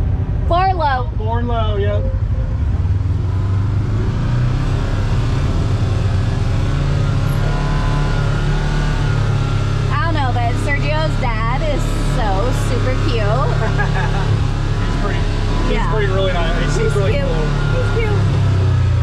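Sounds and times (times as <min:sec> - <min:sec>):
vehicle engine running: 0:00.0 - 0:19.0.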